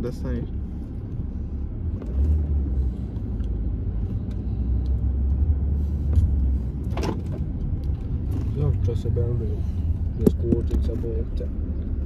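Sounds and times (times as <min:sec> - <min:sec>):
car interior rumble while driving: 0:00.0 - 0:12.0.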